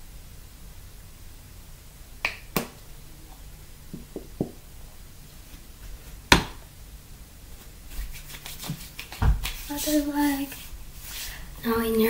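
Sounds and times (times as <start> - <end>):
cream rubbing between palms: 7.9 - 11.4.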